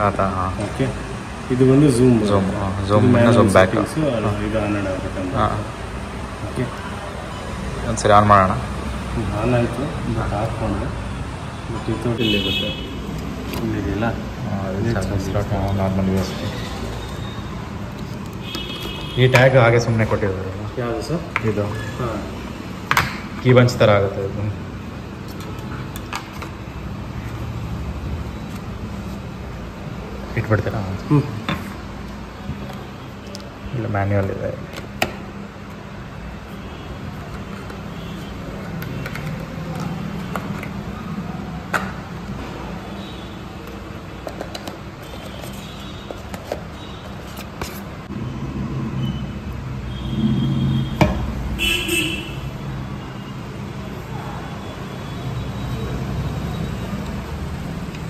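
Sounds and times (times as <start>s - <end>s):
low rumble of distant traffic: 0.0s - 58.0s.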